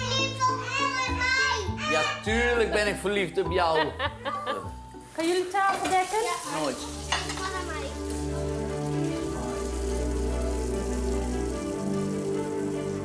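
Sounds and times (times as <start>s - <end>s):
background music of held notes: 0.0s - 13.0s
food frying in a pan: 4.7s - 13.0s.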